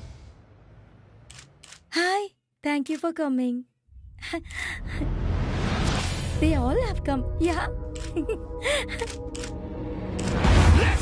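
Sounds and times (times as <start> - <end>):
camera shutter clicks: 9.0 - 9.5, 10.2 - 10.4.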